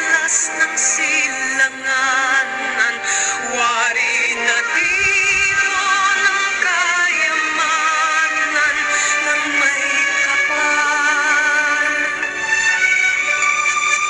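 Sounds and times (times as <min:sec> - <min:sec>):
person singing with vibrato: 0:00.0 - 0:13.9
backing music: 0:00.0 - 0:14.0.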